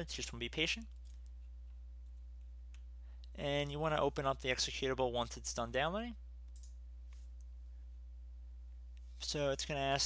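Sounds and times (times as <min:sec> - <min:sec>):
low electrical hum: 0:00.0 - 0:10.0
computer mouse clicks: 0:06.5 - 0:07.5.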